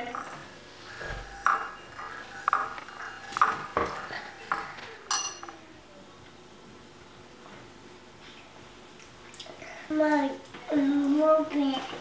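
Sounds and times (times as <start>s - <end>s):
metal spoon clinking on ceramic bowl: 1.4s - 5.6s.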